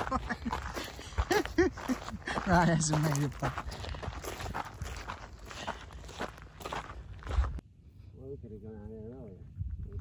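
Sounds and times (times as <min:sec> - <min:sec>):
footsteps on dirt trail: 0:00.0 - 0:07.6.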